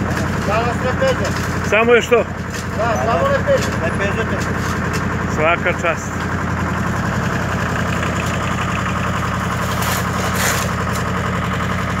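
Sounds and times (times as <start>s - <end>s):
diesel compressor engine running: 0.0s - 12.0s.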